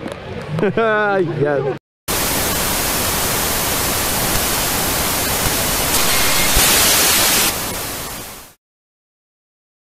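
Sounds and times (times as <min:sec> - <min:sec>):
television static hiss: 0:02.1 - 0:08.6.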